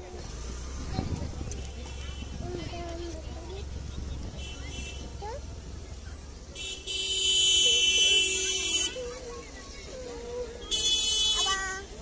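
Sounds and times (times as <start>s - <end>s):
vehicle horn blast: 6.6s - 9.0s, 10.7s - 11.6s.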